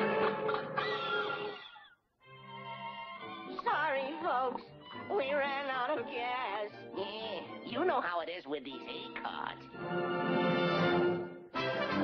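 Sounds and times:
orchestral cartoon music: 0.0s - 12.0s.

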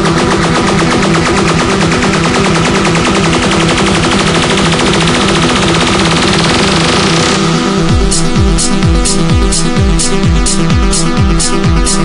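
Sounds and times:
hi-hats: 0.0s - 12.0s
synth bass line: 0.0s - 12.0s
tech house music: 0.0s - 12.0s
kick drum: 7.4s - 12.0s.

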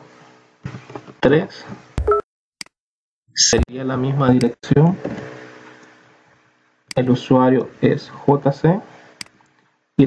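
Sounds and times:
person talking: 3.4s - 4.8s.

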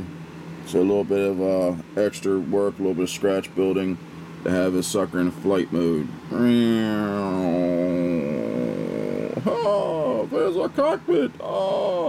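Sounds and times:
man imitating aircraft engine drone: 0.0s - 0.2s, 4.4s - 12.0s.

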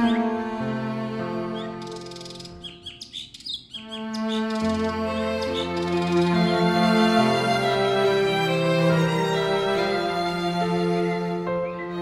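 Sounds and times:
birds chirping: 0.0s - 12.0s
slow instrumental music: 0.0s - 12.0s.

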